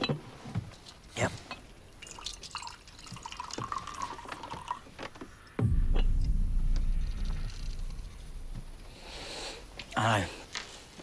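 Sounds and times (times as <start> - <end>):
deep loud rumble: 5.6 - 9.9.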